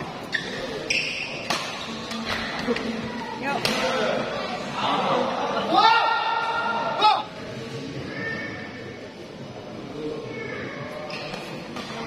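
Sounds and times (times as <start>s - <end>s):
crowd chattering in hall: 0.0s - 12.0s.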